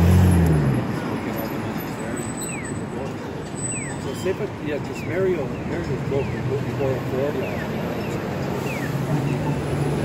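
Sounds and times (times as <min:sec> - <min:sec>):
city street traffic: 0:00.0 - 0:10.0
streetcar approaching: 0:00.0 - 0:10.0.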